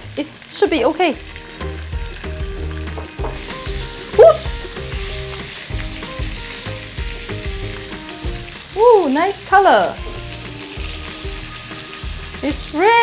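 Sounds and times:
fish sizzling in a pan: 0.0s - 13.0s
brief high voice: 4.2s - 4.5s.

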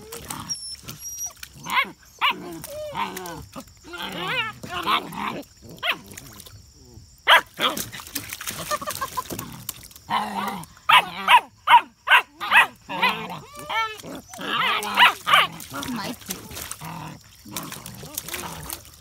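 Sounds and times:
puppy whining call: 0.0s - 3.0s
puppies barking and yapping: 0.0s - 3.3s, 10.4s - 16.8s
person laughing: 8.6s - 9.4s.

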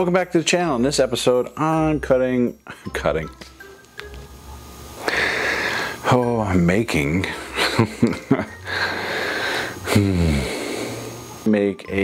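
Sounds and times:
man exhaling breathily: 8.7s - 11.1s.

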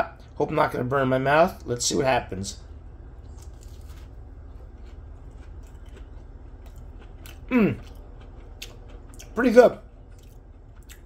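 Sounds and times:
steady low hum: 0.0s - 11.0s
crisp crunches of chewing: 3.2s - 11.0s.

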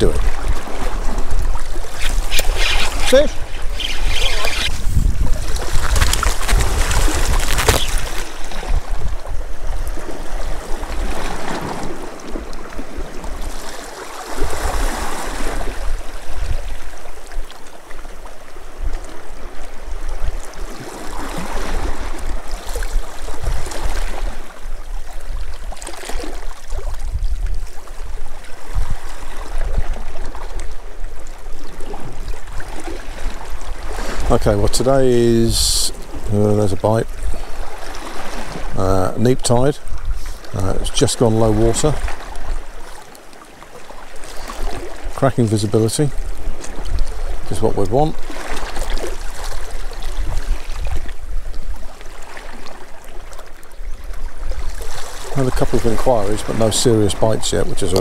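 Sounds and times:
sea water lapping against rocks: 0.0s - 35.0s, 37.1s - 38.8s, 39.6s - 58.0s.

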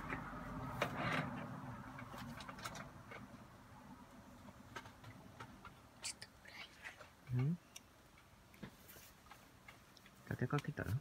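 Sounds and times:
faint clicks and rustles: 0.0s - 11.0s.

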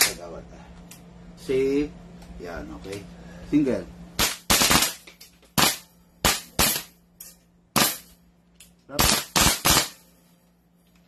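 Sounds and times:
airsoft rifle shots: 4.2s - 5.0s, 5.6s - 7.0s, 7.8s - 8.1s, 9.0s - 10.0s.

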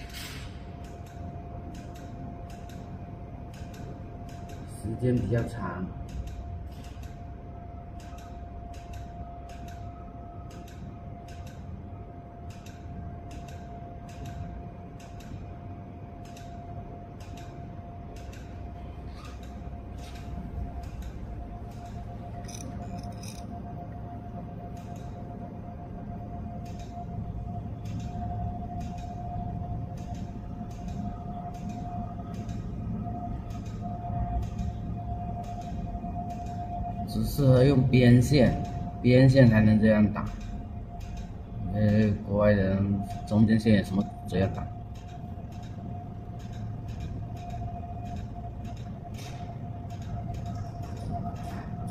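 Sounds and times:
low machine hum: 0.0s - 51.9s
laser pulse clicks: 0.8s - 11.8s, 12.4s - 15.5s, 16.2s - 23.5s, 24.7s - 25.2s, 26.6s - 38.8s, 40.1s - 42.2s, 43.0s - 51.9s.

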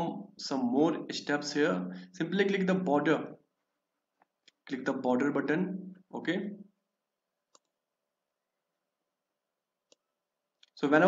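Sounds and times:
faint mouse clicks: 7.5s - 7.8s.

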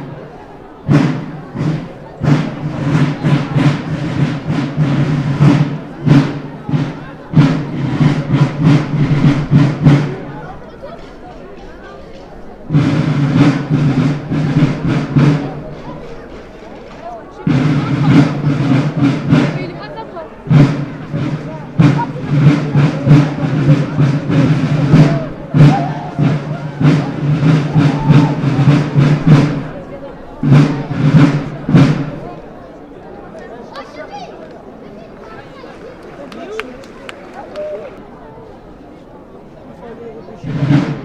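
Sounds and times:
snare drum rolls: 0.0s - 32.4s, 40.4s - 41.0s
crowd noise: 0.0s - 41.0s.

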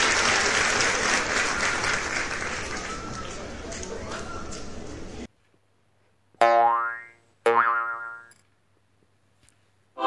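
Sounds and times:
cartoon boing sound effect: 6.4s - 8.3s.

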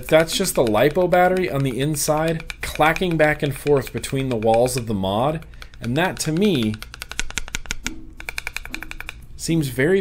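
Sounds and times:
battery rattling inside case: 0.0s - 9.2s.

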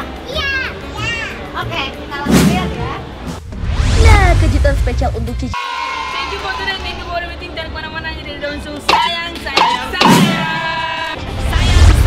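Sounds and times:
young girls speaking: 0.2s - 3.0s.

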